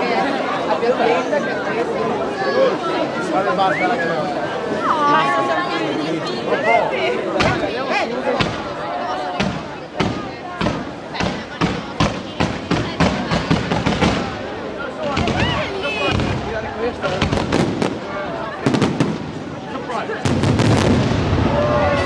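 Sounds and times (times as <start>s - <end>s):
fireworks bangs and crackles: 7.4s - 22.0s.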